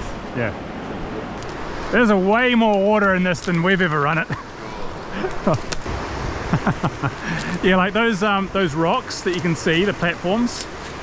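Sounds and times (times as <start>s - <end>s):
river rapids rushing: 0.0s - 11.0s.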